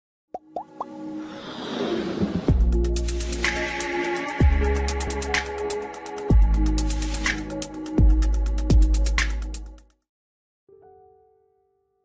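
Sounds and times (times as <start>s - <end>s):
whooshing riser: 1.1s - 3.6s.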